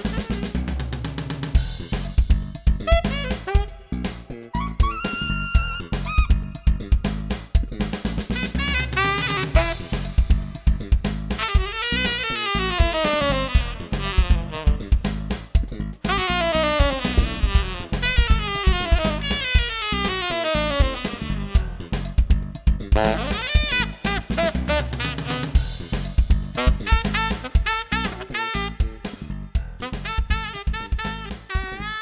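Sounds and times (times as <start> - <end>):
saxophone: 0.0 - 0.8, 2.8 - 7.2, 8.3 - 15.3, 16.0 - 22.0, 23.0 - 25.8, 26.5 - 32.0
drum kit beat: 0.0 - 32.0.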